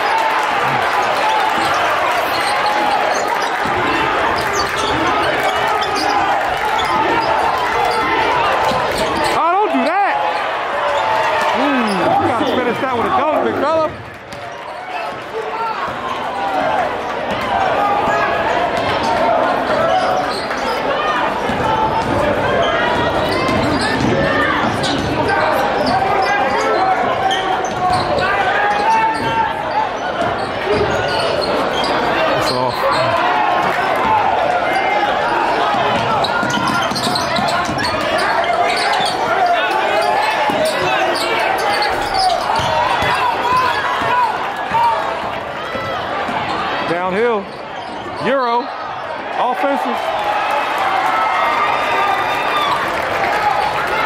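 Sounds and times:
hubbub of voices: 0.0 - 54.0
shoe squeaks: 4.4 - 9.5, 24.7 - 33.2, 34.8 - 44.2, 47.4 - 49.1.

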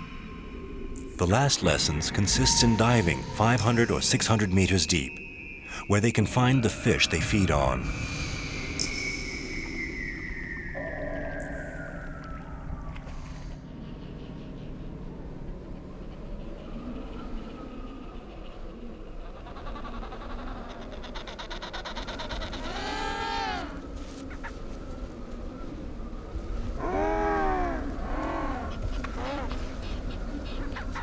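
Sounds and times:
steady low rumble: 0.0 - 19.5.

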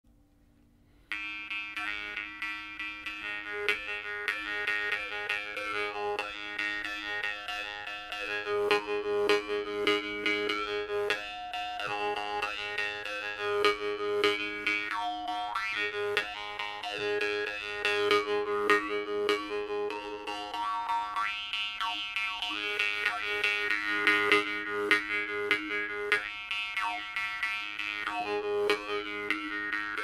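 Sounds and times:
jaw harp plucked: 1.1 - 30.0.

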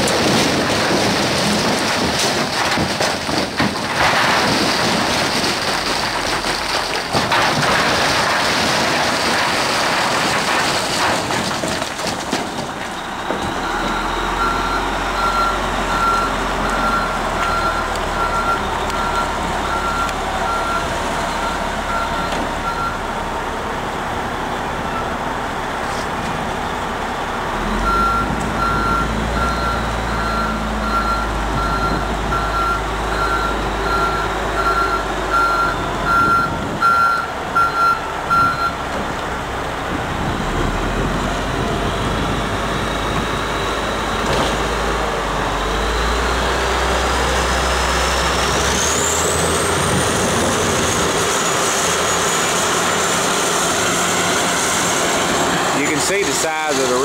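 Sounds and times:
diesel heavy equipment running: 0.0 - 57.0
reversing alarm beeping: 13.4 - 23.1, 27.7 - 38.8.

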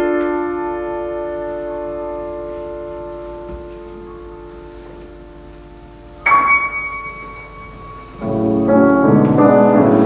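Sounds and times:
grand piano chord ringing: 0.0 - 10.0
soft high piano notes: 0.0 - 10.0.

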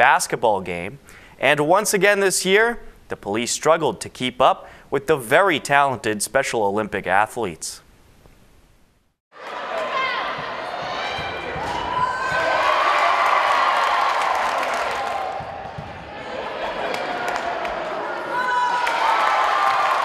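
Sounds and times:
players and spectators shouting: 9.4 - 20.0
basketball bouncing on gym floor: 10.2 - 13.1, 15.2 - 16.2.

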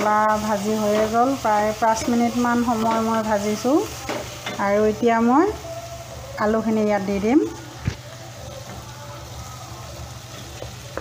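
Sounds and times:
spices frying with faint sizzle: 0.0 - 11.0.

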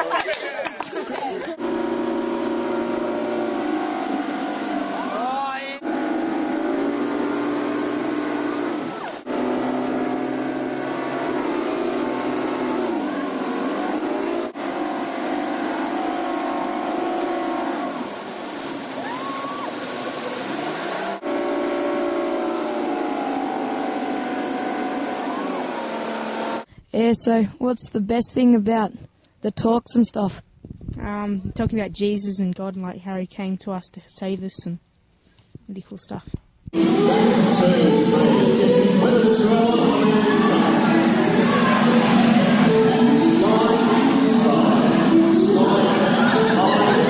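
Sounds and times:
speedboat engine under load: 0.0 - 26.7, 36.7 - 47.0
water spray: 1.6 - 26.7.

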